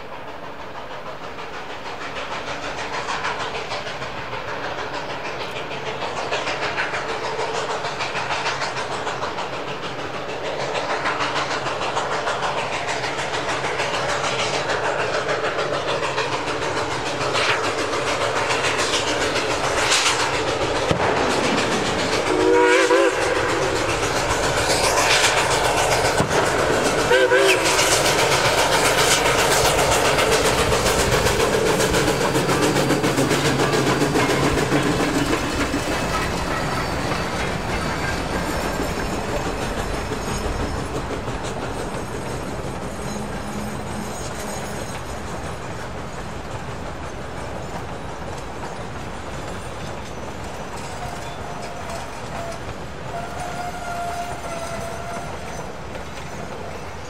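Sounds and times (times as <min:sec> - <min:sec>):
steam locomotive exhaust beats: 0:00.0 - 0:57.0
steam whistle blast: 0:22.3 - 0:23.6, 0:27.1 - 0:27.9, 0:51.0 - 0:55.8.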